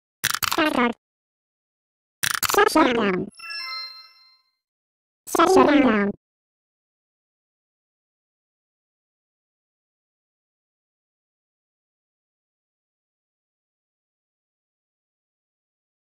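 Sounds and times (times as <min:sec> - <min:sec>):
bell-like chime: 0:03.3 - 0:04.6.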